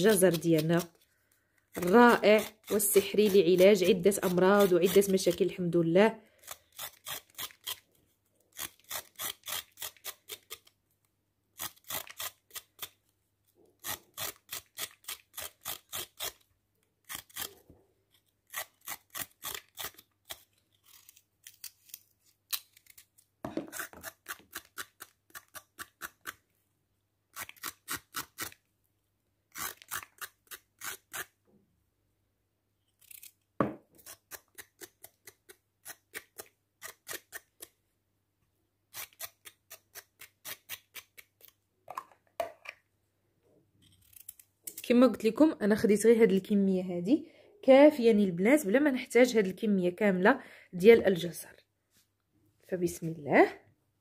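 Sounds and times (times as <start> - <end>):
knife scraping carrot skin: 0.0 - 1.0, 1.7 - 5.4, 6.4 - 7.9, 8.5 - 10.8, 11.6 - 13.1, 13.8 - 26.4, 27.3 - 28.7, 29.5 - 31.4, 32.9 - 37.8, 38.9 - 41.6, 43.8 - 44.9.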